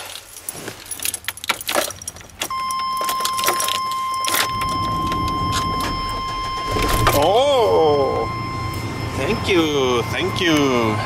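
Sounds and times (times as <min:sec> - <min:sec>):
keys jangling in ignition: 0:00.4 - 0:07.2
steady warning tone: 0:02.5 - 0:11.0
engine starting and running: 0:02.6 - 0:11.0.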